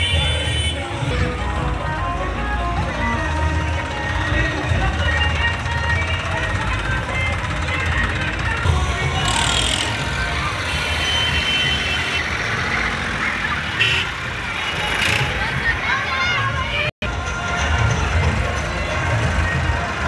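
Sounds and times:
music: 0.0 - 11.9, 15.6 - 20.0
crowd voices: 0.0 - 20.0
tractor diesel engine running: 0.0 - 20.0.

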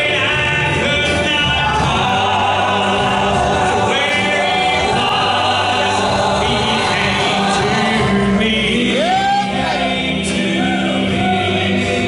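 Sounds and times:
men singing in close harmony: 0.0 - 12.0.

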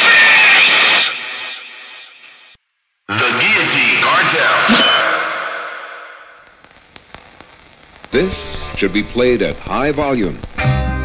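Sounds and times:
crackling clicks: 6.2 - 10.6.

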